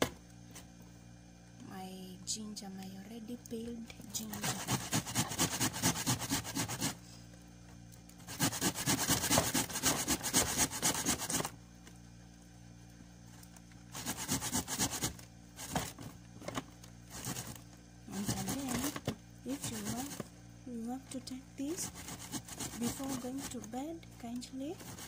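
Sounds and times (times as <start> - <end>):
ginger scraped on a hand grater: 4.2 - 7.0, 8.3 - 11.5, 13.9 - 15.9, 17.1 - 20.2, 21.7 - 23.8, 24.7 - 25.0.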